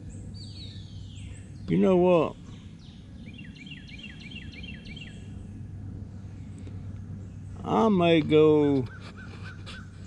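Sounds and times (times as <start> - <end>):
low outdoor rumble: 0.0 - 10.0
songbird whistling downward notes: 2.8 - 5.4.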